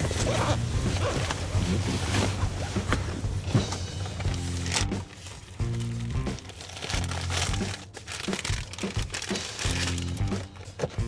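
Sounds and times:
paper bag crinkling: 0:03.8 - 0:10.5.

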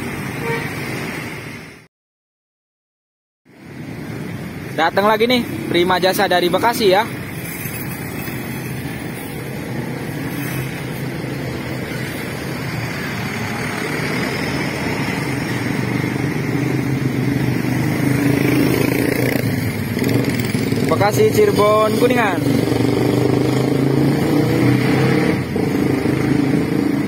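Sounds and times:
motorcycle engines: 0:03.5 - 0:27.0.

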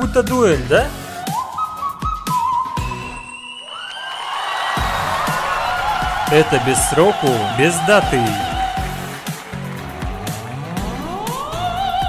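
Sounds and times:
audience cheering: 0:03.2 - 0:12.0
backing music with drum hits: 0:04.8 - 0:12.0.

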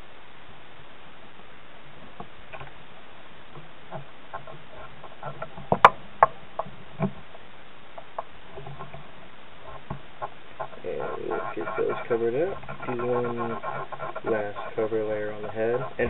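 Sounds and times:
steady low hiss: 0:00.0 - 0:16.0.

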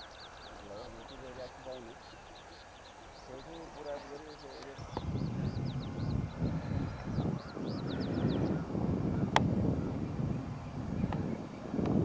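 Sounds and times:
faint bird chirps: 0:00.0 - 0:11.8
wind buffeting microphone: 0:00.0 - 0:12.0.

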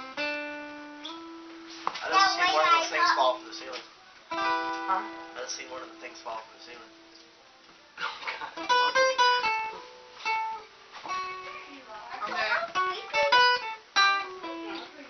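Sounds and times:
acoustic guitar picked notes: 0:00.0 - 0:15.0.

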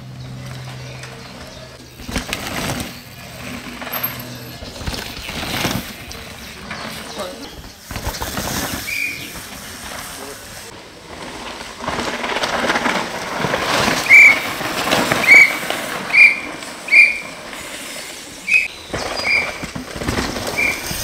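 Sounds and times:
bike tyres over loose gravel: 0:00.0 - 0:21.0
shrill whistle blasts: 0:14.0 - 0:14.6, 0:15.2 - 0:17.4, 0:18.4 - 0:19.6, 0:20.5 - 0:21.0.

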